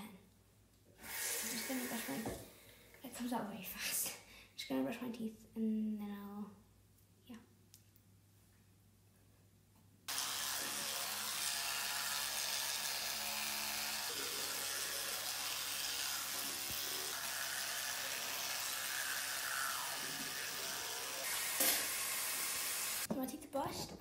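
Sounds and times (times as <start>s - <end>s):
electric toothbrush hum: 1.0s - 2.4s, 10.1s - 23.1s.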